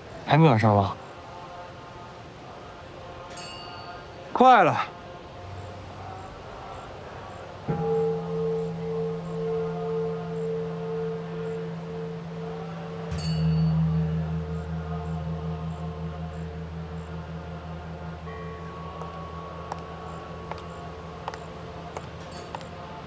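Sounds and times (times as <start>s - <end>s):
large bell ringing: 7.6s - 23.0s
higher thin chime: 7.7s - 23.0s.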